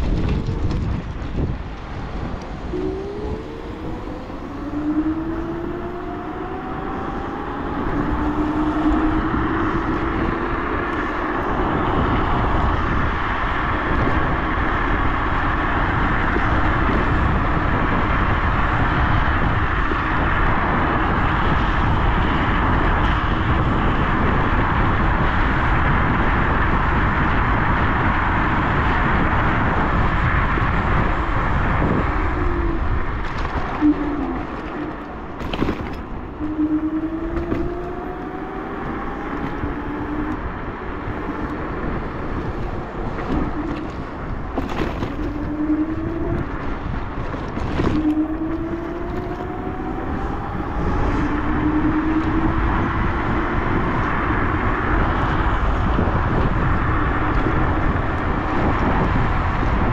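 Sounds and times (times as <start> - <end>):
road noise: 0.0 - 59.9
wind rush: 0.0 - 59.9
electric motor whine: 2.6 - 12.1, 33.6 - 47.0, 47.6 - 54.0.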